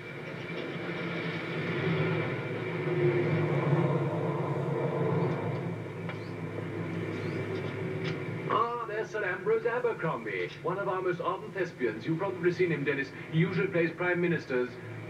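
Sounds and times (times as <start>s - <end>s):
car engine running: 0.5s - 8.6s.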